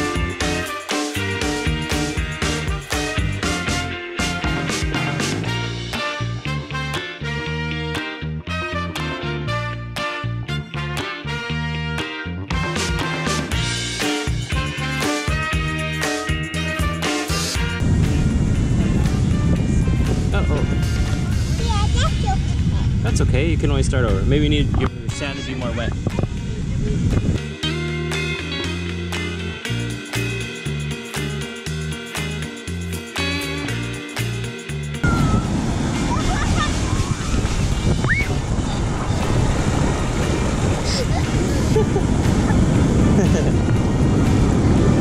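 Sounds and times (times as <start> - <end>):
background music: 0.0 - 45.0
wind buffeting microphone: 17.8 - 27.5, 35.0 - 45.0
child's voice: 21.5 - 23.0, 36.1 - 37.3, 38.1 - 39.4
high rising call: 35.0 - 38.4
surf washing over sand: 35.0 - 45.0.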